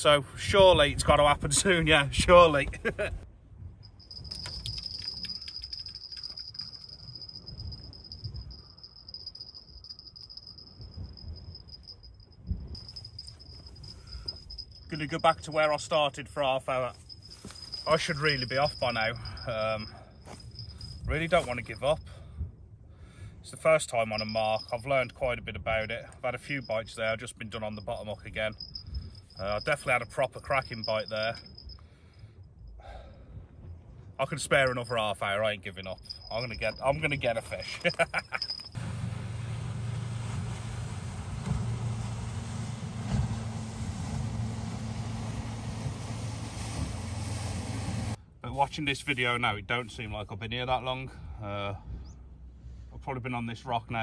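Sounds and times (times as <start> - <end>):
wind rumble on microphone: 0.0 - 15.9, 16.8 - 31.8, 32.5 - 48.2
insect chirring: 3.8 - 15.9, 17.0 - 22.1, 23.9 - 25.0, 25.8 - 32.6, 35.8 - 38.8.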